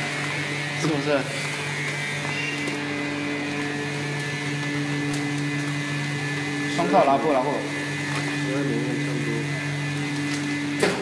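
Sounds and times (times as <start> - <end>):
vacuum pump humming: 0.0 - 11.0.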